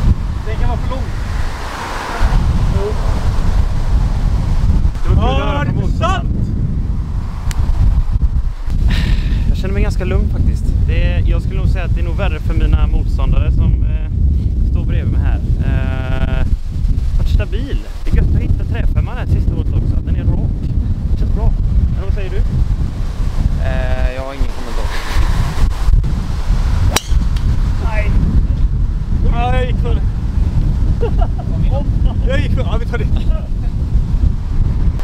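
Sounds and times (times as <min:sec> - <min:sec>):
wind buffeting microphone: 0:00.0 - 0:35.0
golf driver striking ball: 0:26.9 - 0:27.6.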